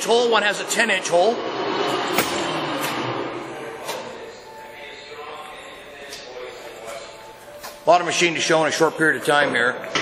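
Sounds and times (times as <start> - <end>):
sharp knocks: 2.0 - 3.0.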